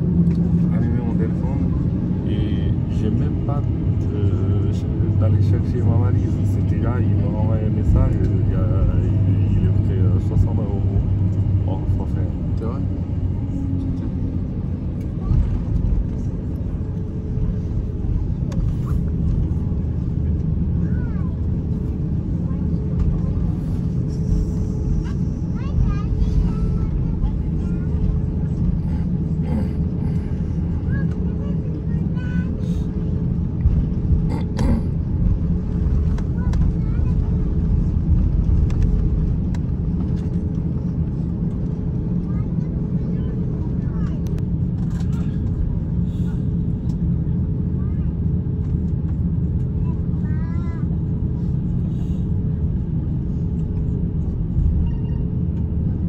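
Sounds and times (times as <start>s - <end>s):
airliner cabin rumble: 0.0s - 56.0s.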